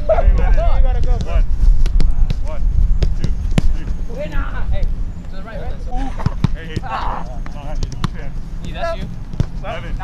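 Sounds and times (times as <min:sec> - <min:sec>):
soccer balls being kicked: 0:00.1 - 0:04.3, 0:06.0 - 0:10.0.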